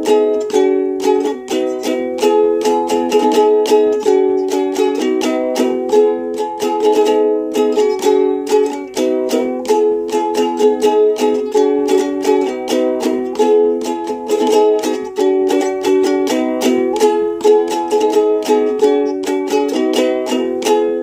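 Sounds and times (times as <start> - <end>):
ukulele strumming chords: 0.0 - 21.0.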